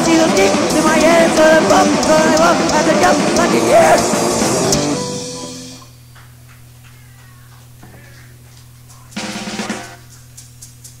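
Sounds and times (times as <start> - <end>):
rock band final chord: 0.0 - 5.9.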